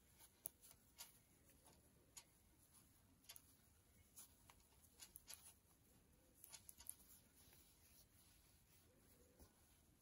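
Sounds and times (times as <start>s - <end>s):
knitting needles clicking: 0.1s - 2.5s, 3.1s - 5.7s, 6.3s - 7.2s.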